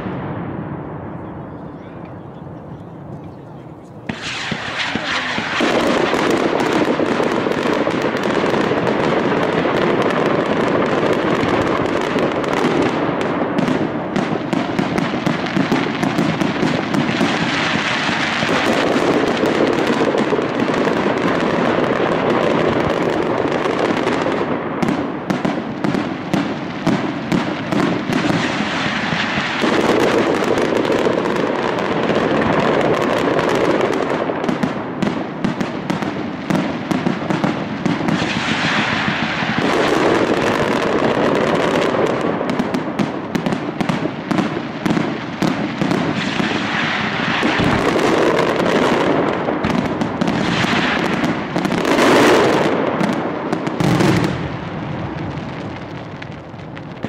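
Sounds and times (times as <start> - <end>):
firecracker bangs and crackle: 0.0 - 1.1, 4.0 - 57.0.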